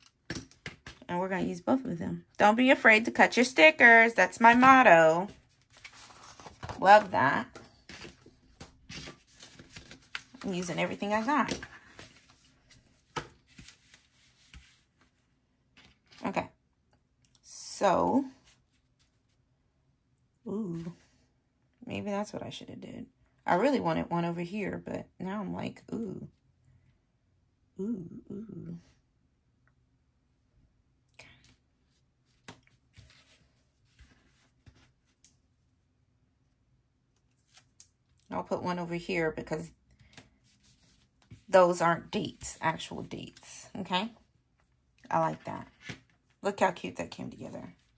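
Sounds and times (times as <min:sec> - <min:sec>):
paper rustling: 0:04.5 - 0:15.2, 0:32.2 - 0:35.3.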